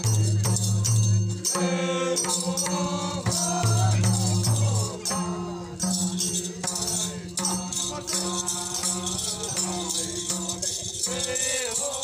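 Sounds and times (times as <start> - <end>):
hand drums beaten: 0.0 - 11.8
group singing: 0.0 - 12.0.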